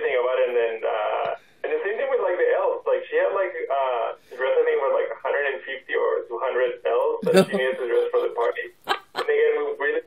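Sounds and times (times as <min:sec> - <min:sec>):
person talking over telephone: 0:07.2 - 0:08.4.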